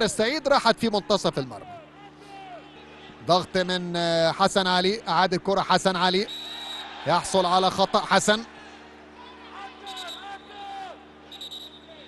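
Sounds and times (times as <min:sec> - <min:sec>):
steady low hum: 0:00.0 - 0:12.0
distant shouting voices: 0:01.6 - 0:03.8, 0:06.3 - 0:12.0.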